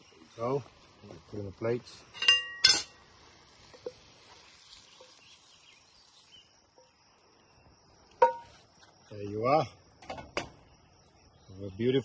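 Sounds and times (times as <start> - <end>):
spoon knocking a pan: 8.2 - 8.4.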